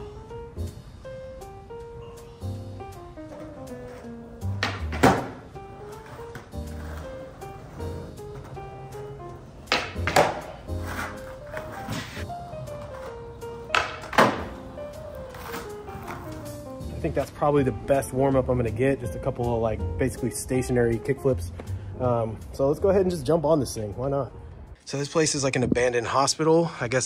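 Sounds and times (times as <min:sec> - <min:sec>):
background music: 0:00.0 - 0:27.0
skateboard tail pop: 0:04.5 - 0:05.5, 0:09.7 - 0:12.2, 0:13.7 - 0:14.6
skateboard landing clack: 0:04.5 - 0:07.0, 0:09.7 - 0:12.2, 0:13.7 - 0:14.6.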